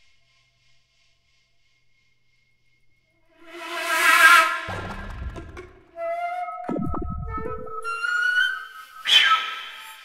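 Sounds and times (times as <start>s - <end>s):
flute playing high note: 6.0s - 10.0s.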